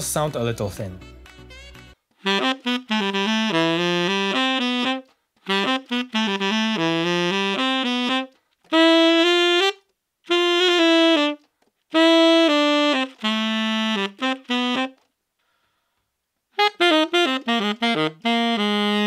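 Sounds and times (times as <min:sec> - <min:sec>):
tenor saxophone phrases: 0:02.2 - 0:15.0, 0:16.5 - 0:19.0.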